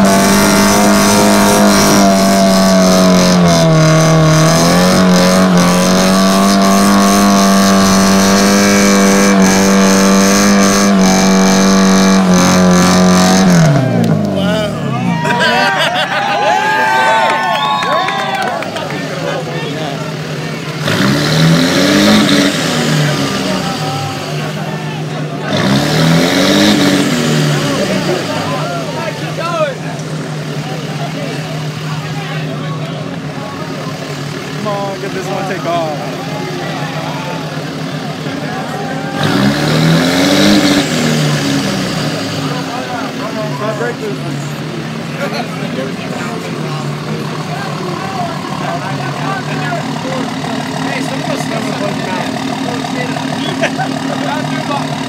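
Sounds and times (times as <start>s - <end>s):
vehicle engine revving: 0.0s - 16.0s, 16.7s - 55.0s
crowd chattering: 0.0s - 55.0s
engines idling: 0.0s - 55.0s.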